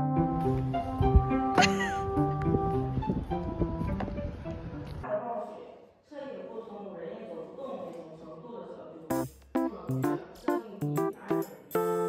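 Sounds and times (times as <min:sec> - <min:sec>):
background music with low bass: 0:00.0 - 0:05.0, 0:09.1 - 0:12.0.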